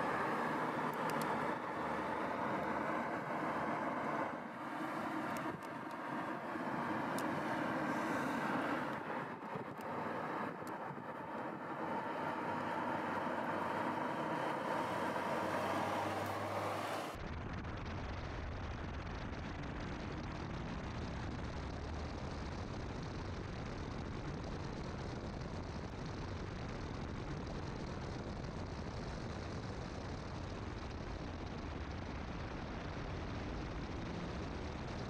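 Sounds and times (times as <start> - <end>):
car engine and road noise: 0.0 - 17.9, 20.6 - 35.0.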